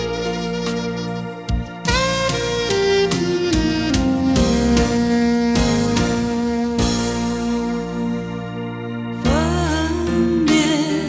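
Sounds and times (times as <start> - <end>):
steady drum beat: 0.0 - 7.4
lead melody of held notes: 0.0 - 11.0.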